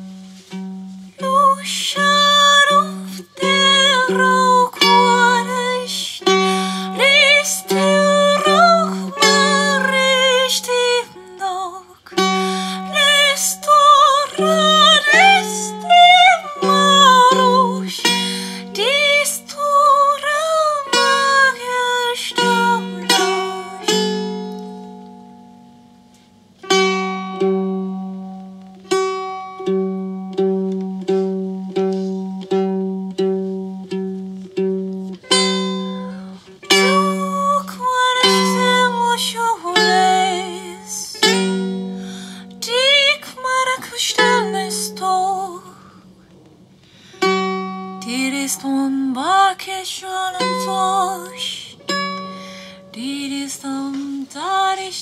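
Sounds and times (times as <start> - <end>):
plucked string instrument: 0.0 - 55.0
woman singing: 1.2 - 24.4, 36.6 - 45.9, 48.0 - 52.0, 52.8 - 55.0.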